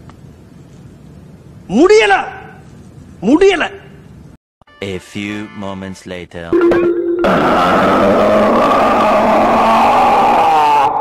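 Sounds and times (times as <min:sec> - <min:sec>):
man wailing: 0:07.2 - 0:11.0.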